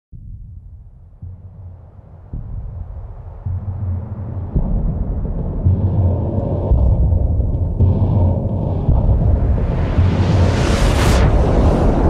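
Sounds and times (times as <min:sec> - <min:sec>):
deep cinematic rumble: 0:00.1 - 0:12.0.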